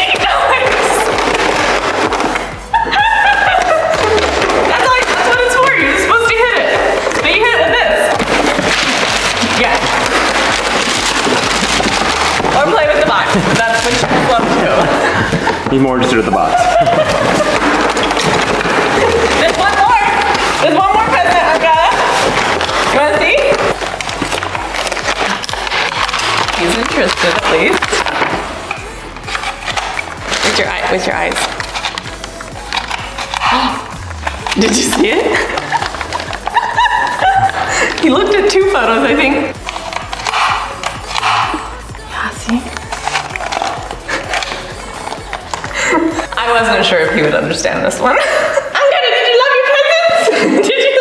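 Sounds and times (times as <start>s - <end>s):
background music: 0.0s - 51.0s
chimpanzee breathy vocal sounds: 40.3s - 42.2s.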